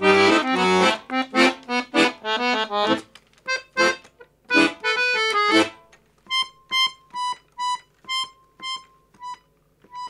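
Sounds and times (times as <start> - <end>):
accordion playing high note: 0.0 - 3.0.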